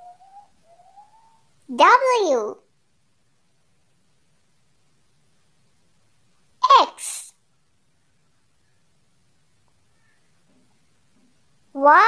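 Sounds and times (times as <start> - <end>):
high voice sounding a letter: 1.7 - 2.6, 6.6 - 7.3, 11.8 - 12.0.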